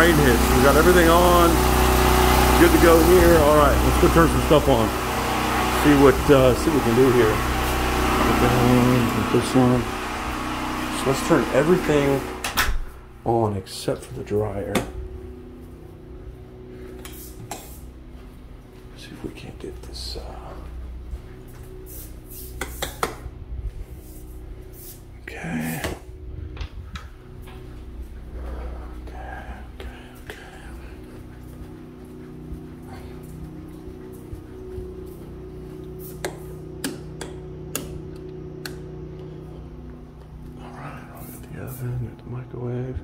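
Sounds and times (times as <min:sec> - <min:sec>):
low machine hum: 0:00.0 - 0:43.0.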